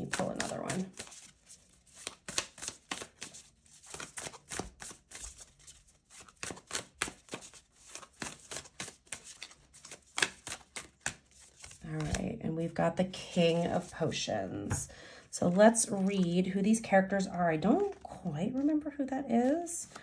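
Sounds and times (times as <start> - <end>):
cards being shuffled: 0.0 - 12.2, 17.7 - 18.8, 19.4 - 20.0.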